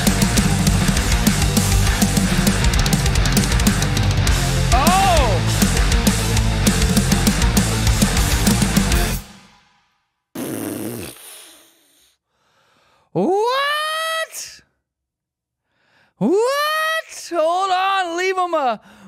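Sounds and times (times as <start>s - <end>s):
heavy rock with pounding drums: 0.0s - 9.4s
man yelling high-pitched: 4.7s - 5.5s, 13.2s - 14.6s, 16.2s - 18.8s.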